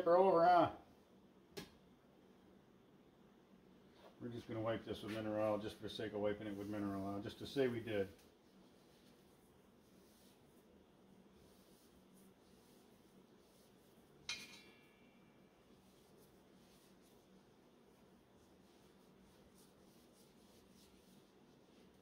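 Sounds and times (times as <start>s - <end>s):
sharp metallic clink: 14.3s - 15.0s.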